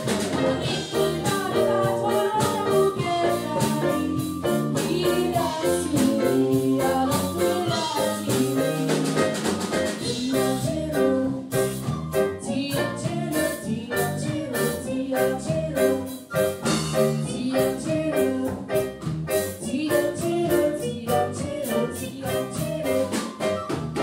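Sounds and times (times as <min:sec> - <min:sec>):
drum kit beat: 0:00.0 - 0:24.0
electric bass guitar: 0:00.0 - 0:24.0
keyboards: 0:00.0 - 0:24.0
woman singing lead: 0:00.0 - 0:24.0.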